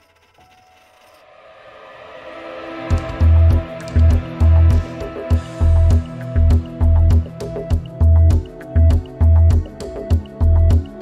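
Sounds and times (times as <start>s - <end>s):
sustained musical tone: 1.3s - 9.8s.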